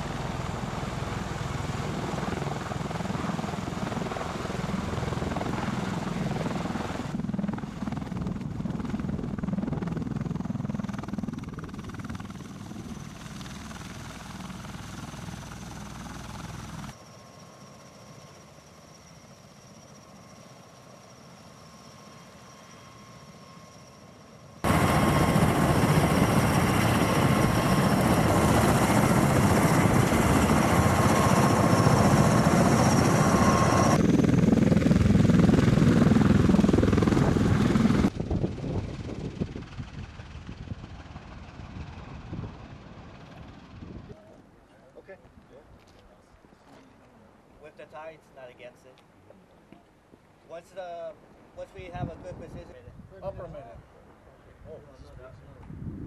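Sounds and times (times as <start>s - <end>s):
high turbine whine: 0.0s - 44.0s
aircraft rotor noise: 0.0s - 44.2s.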